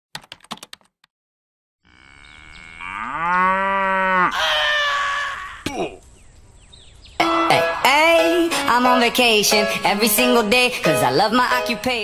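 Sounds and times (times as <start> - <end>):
keyboard typing clicks: 0.2 - 1.0
cow mooing: 1.8 - 5.6.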